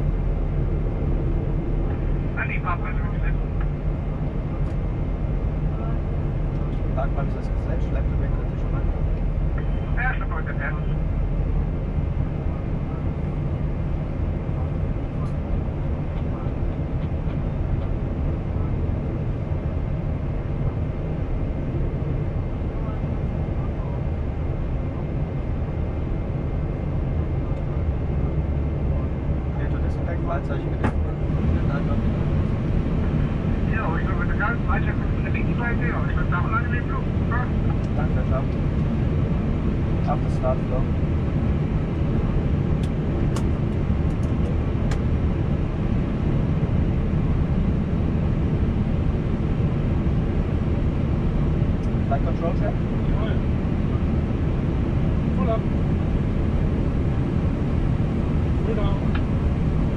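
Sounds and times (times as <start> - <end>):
jet engines idling drone: 0.0 - 59.9.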